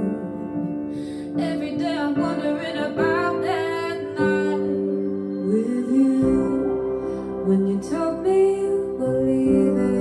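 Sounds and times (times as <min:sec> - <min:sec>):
soft piano accompaniment: 0:00.0 - 0:10.0
woman singing: 0:00.0 - 0:10.0.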